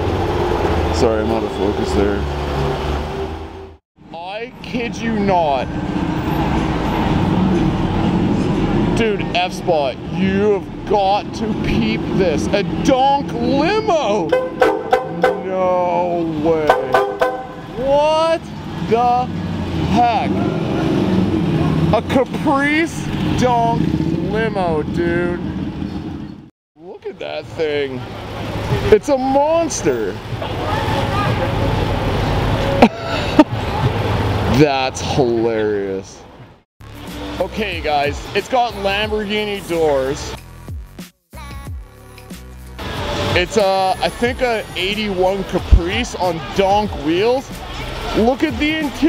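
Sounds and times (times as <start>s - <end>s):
car engine and exhaust rumble: 0.0s - 32.8s.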